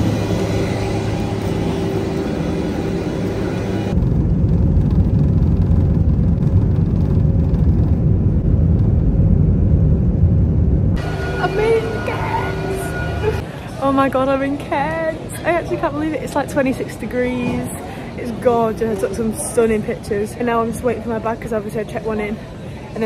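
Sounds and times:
jet engines rumbling in cabin: 0.0s - 13.7s
jet airliner whine and hum: 0.0s - 23.0s.

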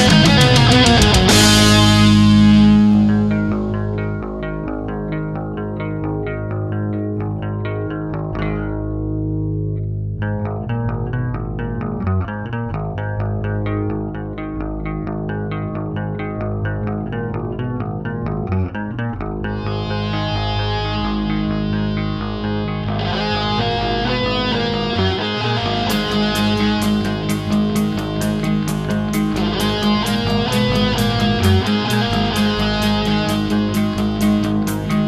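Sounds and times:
bass guitar: 0.0s - 35.0s
electric guitar playing notes: 0.0s - 35.0s
loud guitar chord: 0.0s - 35.0s.

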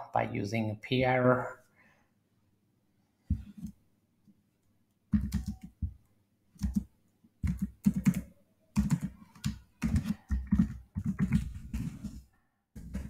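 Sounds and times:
typing on keyboard: 5.1s - 5.9s, 6.6s - 12.0s.

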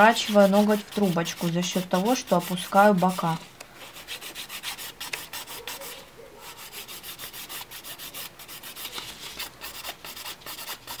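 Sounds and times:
nail file rasping: 9.6s - 11.0s.

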